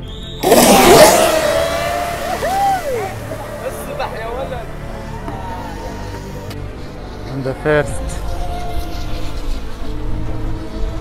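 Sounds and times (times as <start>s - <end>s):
music playing: 0.0s - 11.0s
rc boats motor and spray rush: 0.4s - 11.0s.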